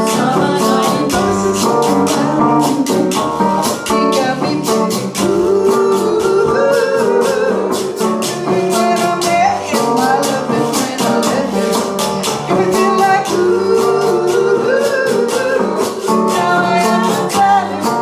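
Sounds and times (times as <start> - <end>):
hand percussion: 0.0 - 18.0
strummed acoustic guitar: 0.0 - 18.0
woman singing: 0.0 - 18.0.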